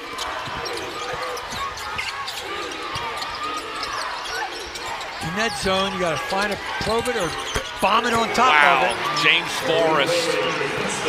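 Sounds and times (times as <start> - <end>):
basketball bouncing: 0.0 - 4.0
shoe squeaks and knocks on court: 0.0 - 9.1
murmur of crowd voices: 0.0 - 11.0.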